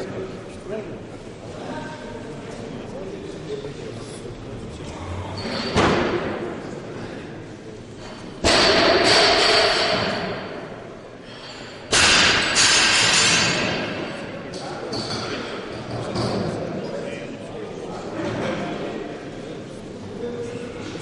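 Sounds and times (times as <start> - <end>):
loud bangs echoing in a hall: 5.6 - 7.4, 8.4 - 11.0, 11.8 - 16.8.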